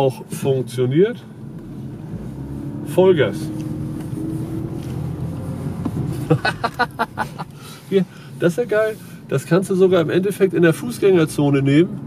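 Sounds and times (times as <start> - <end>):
car engine under full throttle: 0.0 - 12.0.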